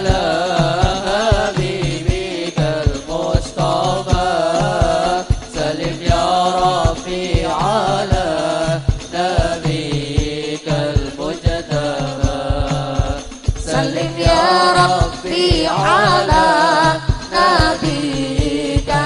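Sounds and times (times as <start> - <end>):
frame drums beating: 0.0 - 19.0
person singing devotional song: 0.0 - 19.0.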